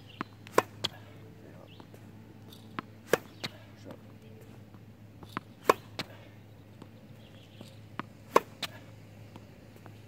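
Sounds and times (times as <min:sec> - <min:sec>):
tennis ball bouncing: 0:00.1 - 0:10.0
racket hitting tennis ball: 0:00.2 - 0:01.1, 0:01.7 - 0:03.8, 0:05.2 - 0:06.2, 0:07.6 - 0:08.9.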